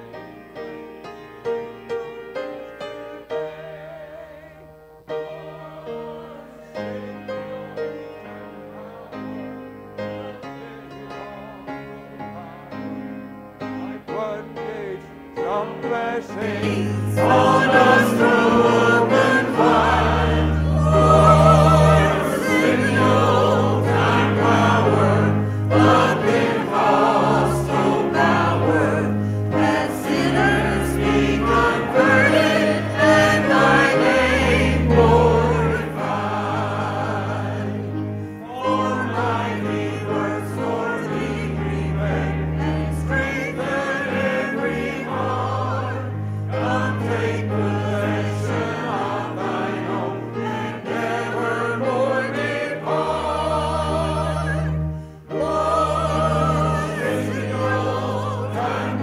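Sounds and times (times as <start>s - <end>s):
choir singing a hymn: 0.0s - 59.0s
instrumental accompaniment: 0.0s - 59.0s.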